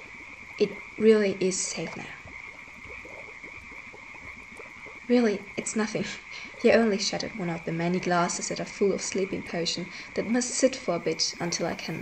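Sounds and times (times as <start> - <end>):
faint low pops: 0.0 - 12.0.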